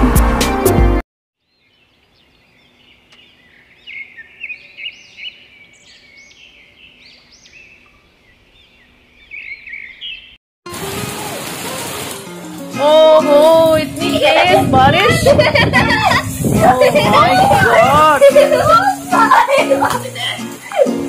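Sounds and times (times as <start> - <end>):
small birds singing: 1.4 - 10.4
heavy rain hiss: 10.7 - 21.0.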